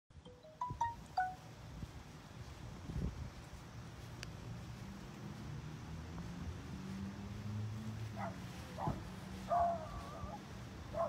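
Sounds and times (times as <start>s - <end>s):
chime ringing notes: 0.2s - 1.5s
low wind rumble: 1.0s - 11.0s.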